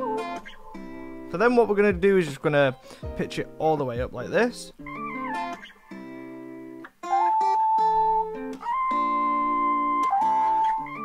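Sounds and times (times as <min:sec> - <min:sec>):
acoustic guitar loop: 0:00.0 - 0:11.0.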